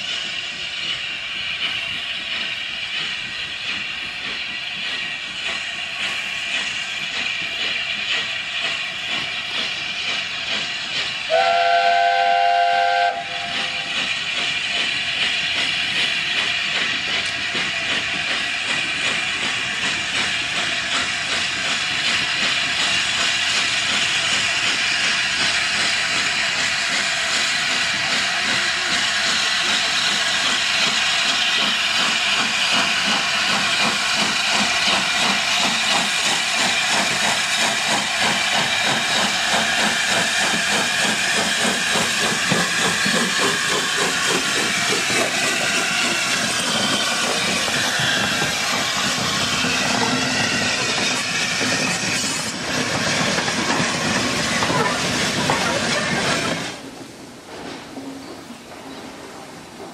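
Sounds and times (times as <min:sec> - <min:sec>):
steam hiss: 0:00.0 - 0:59.9
locomotive exhaust beat: 0:00.1 - 0:56.1
steam locomotive chime whistle: 0:11.3 - 0:14.0.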